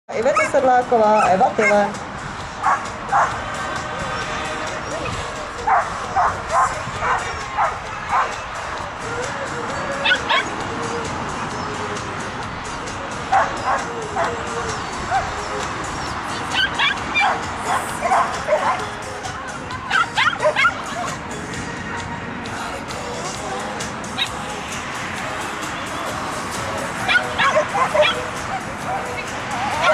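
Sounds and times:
outdoor background noise: 0:00.1 - 0:29.9
dog barking: 0:00.3 - 0:01.9, 0:02.6 - 0:03.4, 0:05.6 - 0:08.4, 0:10.0 - 0:10.5, 0:13.3 - 0:14.4, 0:15.1 - 0:15.3, 0:16.5 - 0:18.9, 0:19.9 - 0:21.1, 0:27.1 - 0:29.9.

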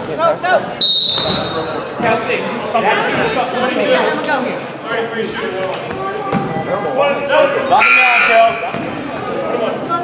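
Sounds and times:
people calling out: 0:07.7 - 0:08.7.

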